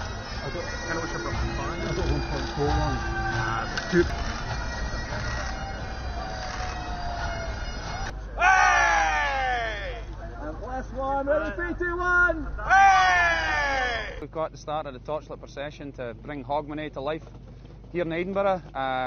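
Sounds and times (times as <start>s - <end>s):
bagpipes with drones: 0.0s - 10.2s
crowd noise: 0.0s - 11.6s.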